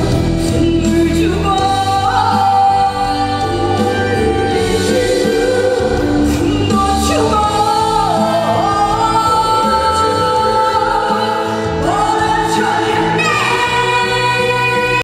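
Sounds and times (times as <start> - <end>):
woman singing lead: 0.0 - 15.0
female backing singers: 0.4 - 15.0.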